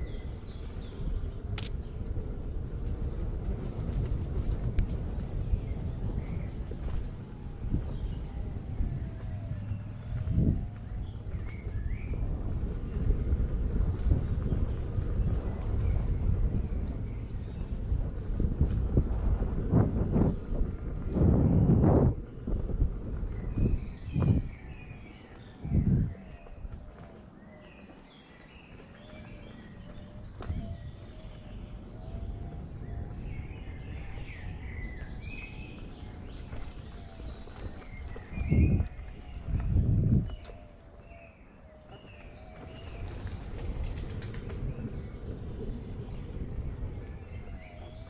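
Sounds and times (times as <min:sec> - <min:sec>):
electric unicycle rumbling on dirt: 0:00.0 - 0:48.0
birds chirping: 0:04.0 - 0:19.1, 0:19.8 - 0:48.0.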